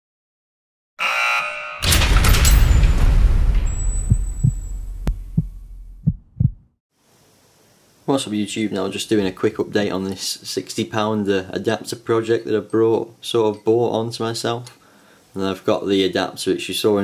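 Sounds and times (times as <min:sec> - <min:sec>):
bright buzzing hit: 0:01.0 - 0:05.2
loud deep boom: 0:01.8 - 0:06.1
dull heartbeat thumps: 0:03.4 - 0:06.7.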